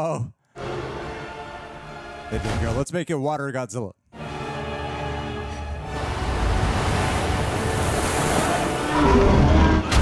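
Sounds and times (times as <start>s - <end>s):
surging ocean water: 5.8s - 10.0s.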